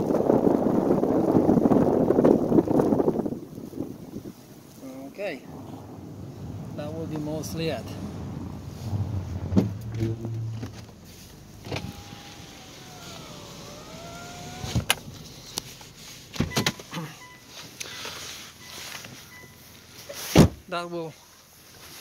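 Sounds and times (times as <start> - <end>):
low hum: 5.4 - 16.2
thin whine: 6.8 - 15.8.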